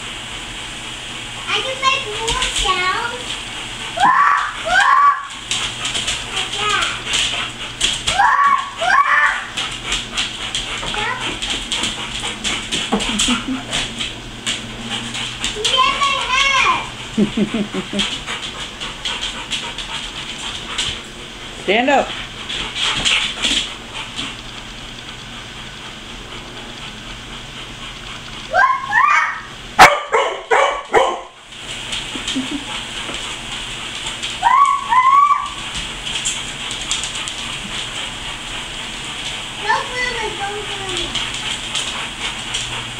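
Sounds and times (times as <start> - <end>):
dog claws clicking on tile floor: 1.8 - 21.2, 22.1 - 25.2, 30.3 - 42.9
dog high-pitched squealing cry: 4.0 - 5.4, 8.1 - 9.5, 28.5 - 29.5, 34.4 - 35.6
dog barking: 29.8 - 31.4.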